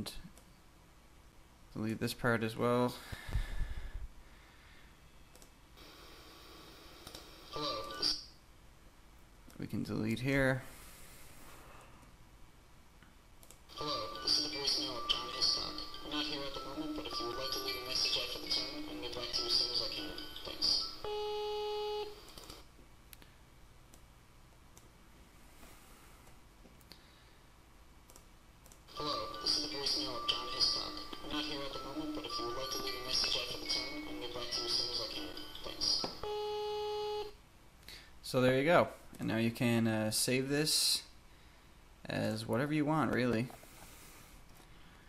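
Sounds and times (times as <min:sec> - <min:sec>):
faint steady hum: 0:00.0 - 0:45.0
computer mouse clicking: 0:13.4 - 0:13.6, 0:28.0 - 0:28.8.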